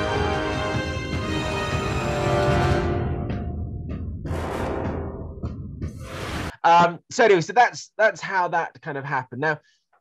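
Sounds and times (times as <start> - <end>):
orchestral hits: 0.0 - 6.2
orchestral film score: 0.0 - 6.6.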